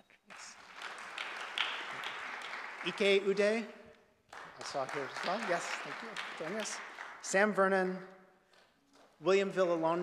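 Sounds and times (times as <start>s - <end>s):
audience applause: 0.3s - 3.7s, 4.3s - 7.6s.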